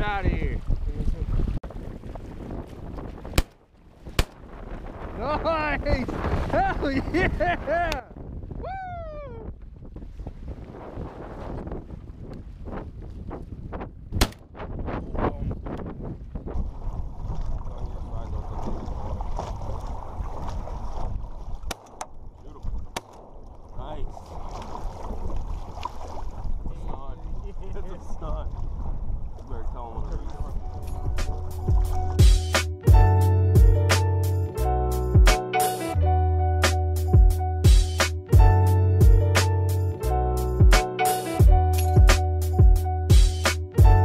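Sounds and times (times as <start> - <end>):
wind on microphone: 0.0 - 33.2
water slapping against hull: 0.6 - 5.2, 6.0 - 8.0, 15.7 - 32.6.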